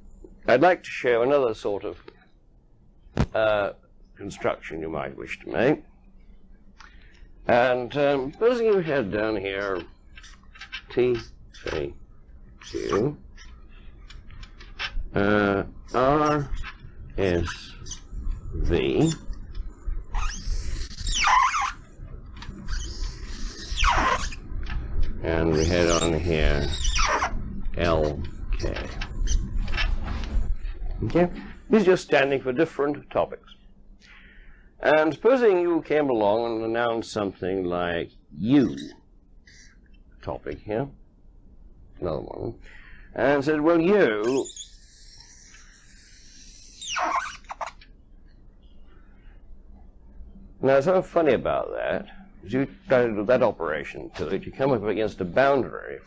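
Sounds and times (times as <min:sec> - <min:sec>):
marker pen squeaking: 0:07.9 - 0:12.0, 0:12.6 - 0:15.0, 0:15.9 - 0:18.1, 0:18.7 - 0:24.5, 0:25.4 - 0:30.0, 0:38.6 - 0:39.9, 0:43.8 - 0:47.9.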